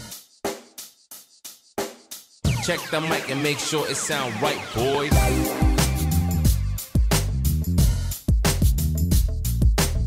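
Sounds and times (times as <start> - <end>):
drum kit hits: 5.1 - 8.7.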